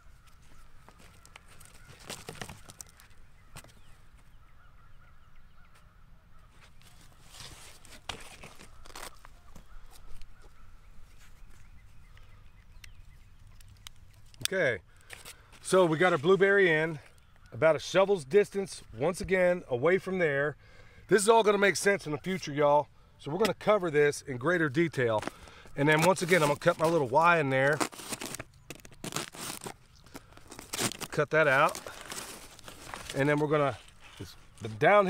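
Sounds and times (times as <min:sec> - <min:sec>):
bird chirps: 0:00.0 - 0:07.3, 0:08.5 - 0:14.3.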